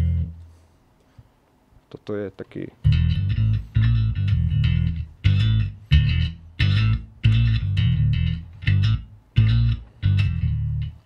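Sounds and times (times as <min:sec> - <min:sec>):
synth-like electric bass riff: 0:00.0 - 0:00.4, 0:02.8 - 0:11.0.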